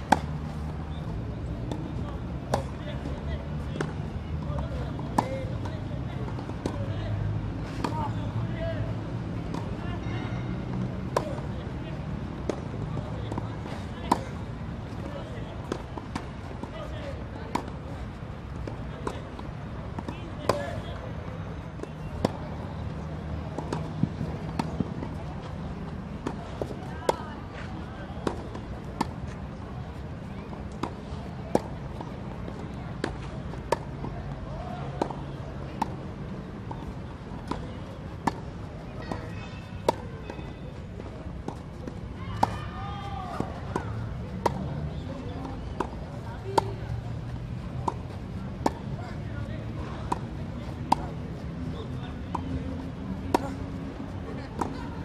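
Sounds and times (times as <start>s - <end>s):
tennis ball hit by rackets: 0.0s - 0.7s, 2.5s - 2.8s, 4.6s - 6.9s, 11.0s - 11.5s, 12.4s - 14.4s, 23.5s - 25.2s, 28.2s - 29.3s, 30.5s - 34.1s, 34.8s - 36.0s, 36.6s - 40.5s, 41.5s - 46.8s, 47.7s - 49.1s, 49.7s - 51.2s, 52.2s - 53.8s, 54.4s - 54.9s
distant voices: 0.0s - 55.0s.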